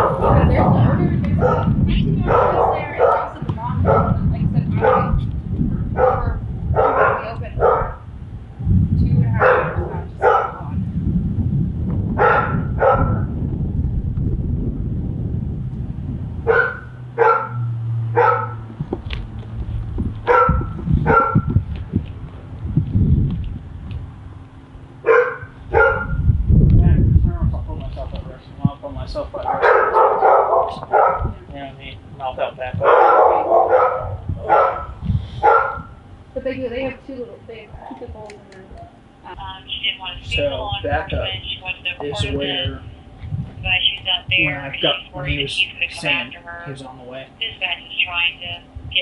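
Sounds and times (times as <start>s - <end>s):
dogs barking: 0.0s - 8.1s, 9.3s - 10.7s, 12.2s - 13.4s, 16.4s - 18.7s, 20.2s - 21.6s, 25.0s - 26.3s, 29.4s - 31.4s, 32.7s - 36.0s.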